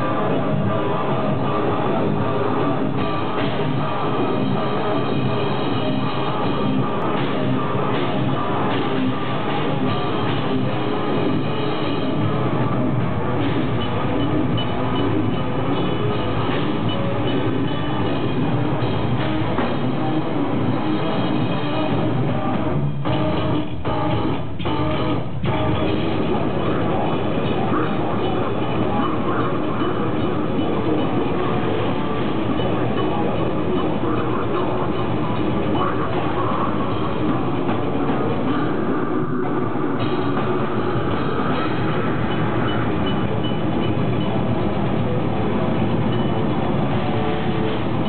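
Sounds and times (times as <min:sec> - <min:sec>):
death metal band playing: 0:00.0 - 0:48.0.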